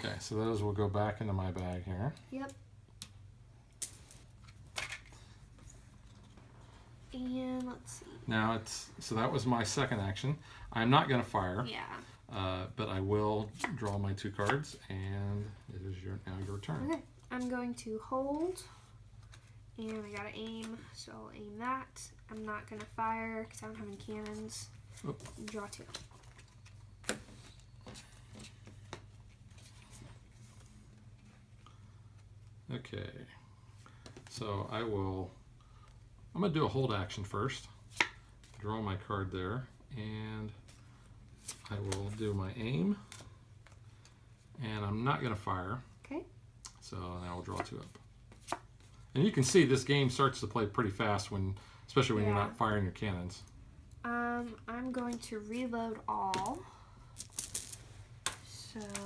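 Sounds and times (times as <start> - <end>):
playing cards rustling: 23.8 - 31.4, 40.6 - 44.2, 47.3 - 49.9, 57.2 - 59.0.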